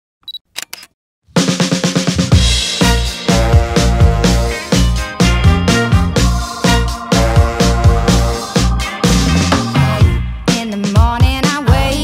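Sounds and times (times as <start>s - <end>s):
music with fast drum hits: 1.3s - 12.0s.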